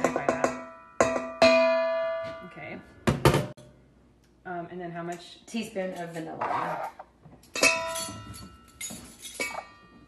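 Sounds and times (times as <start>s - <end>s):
metal measuring spoons clinking: 7.5s - 10.0s.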